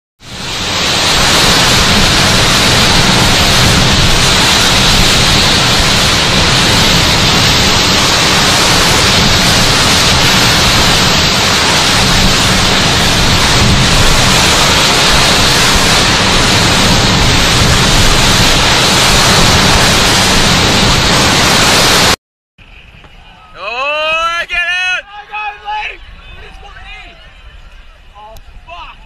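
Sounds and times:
heavy rain: 0.2 - 22.2
storm wind: 0.2 - 29.0.

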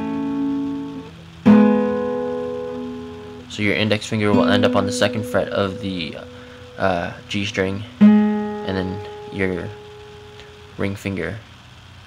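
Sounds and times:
acoustic guitar strings plucked: 0.0 - 10.8.

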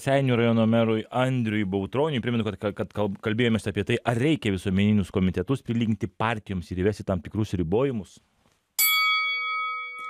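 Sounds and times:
boxing ring bell ringing: 8.8 - 10.0.

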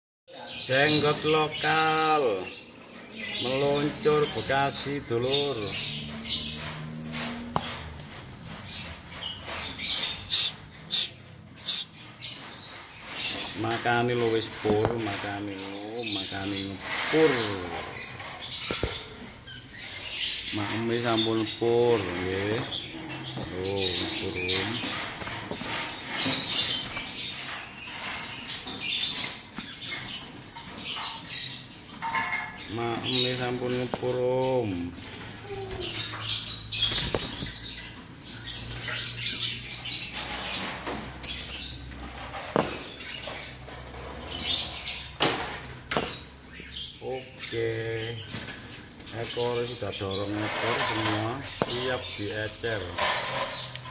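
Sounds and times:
birds rustling on cage floor: 12.0 - 32.4, 35.0 - 46.6
birds fluttering wings: 36.8 - 37.7.

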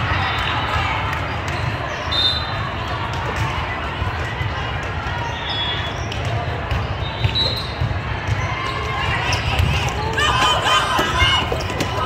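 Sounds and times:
murmur of voices: 0.0 - 12.0
volleyballs thudding: 6.1 - 12.0.

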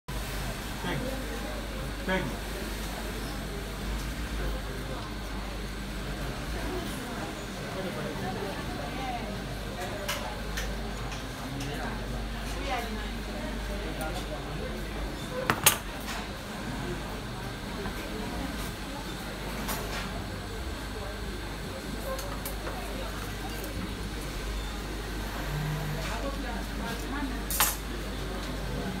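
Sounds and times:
faint background voices: 0.2 - 29.0.

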